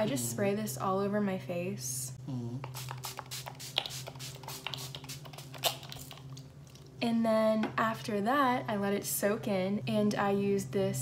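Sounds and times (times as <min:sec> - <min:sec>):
pump bottle spraying mist: 0:02.6 - 0:06.2.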